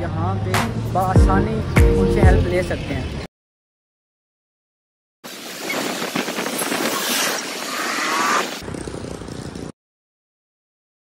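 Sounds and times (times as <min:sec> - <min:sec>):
outdoor noise: 0:05.2 - 0:09.8
motorcycles passing: 0:07.9 - 0:09.8.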